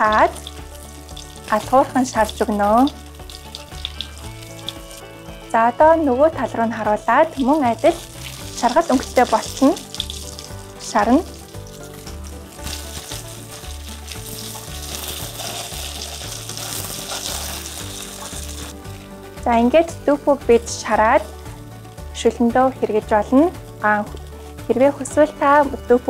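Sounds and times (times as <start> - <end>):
tofu sizzling in a pan: 0.0 - 5.5, 7.4 - 19.3, 21.2 - 22.2.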